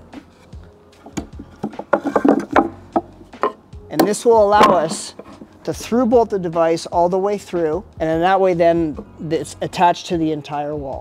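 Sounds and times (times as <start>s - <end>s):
wood knocking and scraping on wood: 0.4s - 5.7s.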